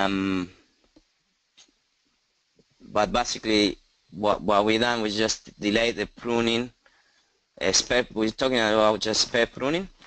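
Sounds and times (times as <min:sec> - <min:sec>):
man speaking: 0:00.0 - 0:00.6, 0:02.8 - 0:06.8, 0:07.6 - 0:10.0
faint steady hiss: 0:00.0 - 0:10.0.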